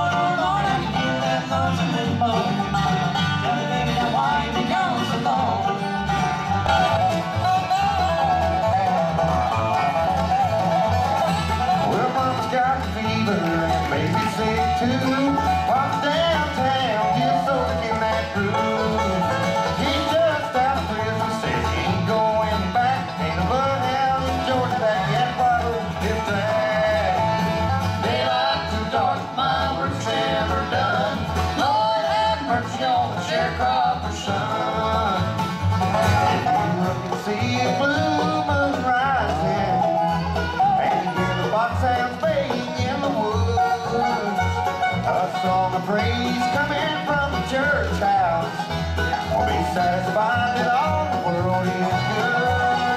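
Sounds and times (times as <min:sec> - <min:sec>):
acoustic guitar: 0:00.0 - 0:52.9
banjo: 0:00.0 - 0:52.9
mandolin: 0:00.0 - 0:52.9
upright bass: 0:00.0 - 0:52.9.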